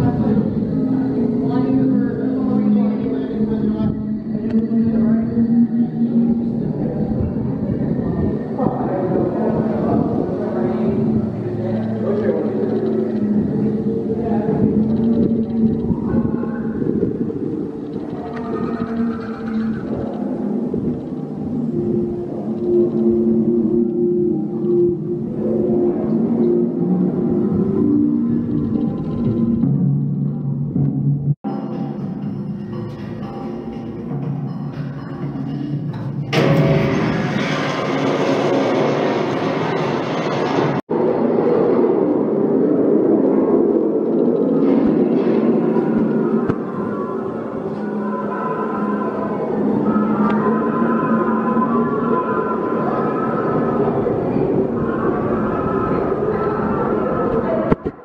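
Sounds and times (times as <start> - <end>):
atmospheric background music: 0.0 - 58.0
dense noisy rumbling: 0.0 - 58.0.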